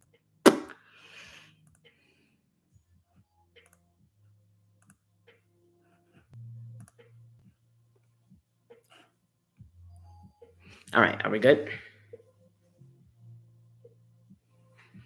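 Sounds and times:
computer mouse clicks: 6.8 - 7.1.

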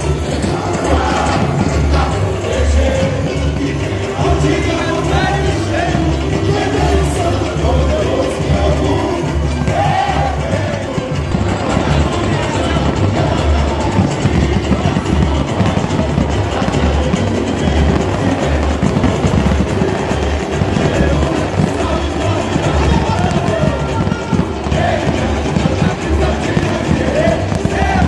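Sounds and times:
crowd noise: 0.0 - 28.0
deep bass drums: 0.0 - 28.0
person singing samba: 0.0 - 28.0
samba drumming over loudspeakers: 0.0 - 28.0.

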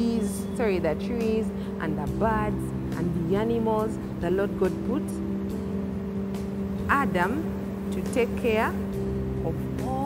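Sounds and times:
low hum with held tones: 0.0 - 10.0.

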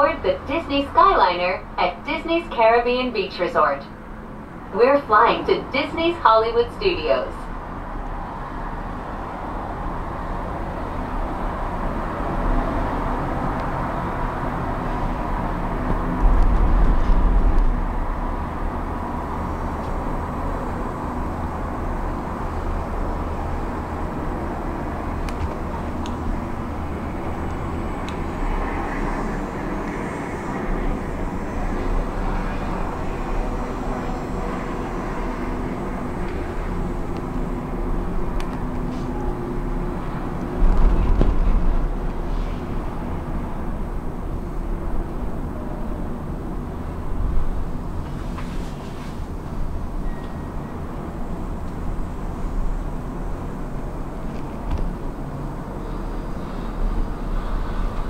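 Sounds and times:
gondola cabin rumble: 0.0 - 58.0.

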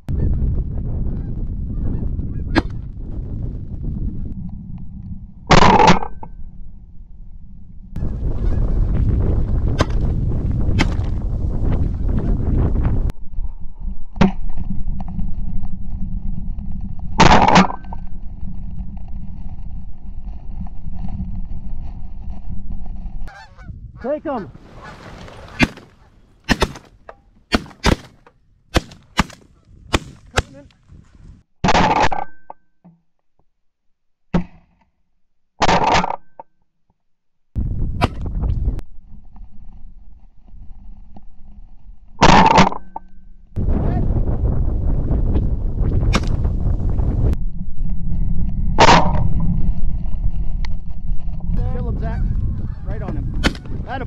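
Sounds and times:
wind buffeting microphone: 0.0 - 5.5, 6.3 - 17.2, 17.8 - 27.5, 28.6 - 31.4, 37.6 - 38.8, 43.6 - 54.0
geese honking: 23.3 - 26.3, 52.0 - 53.8
shotgun shots: 25.5 - 30.6, 53.4 - 53.7.

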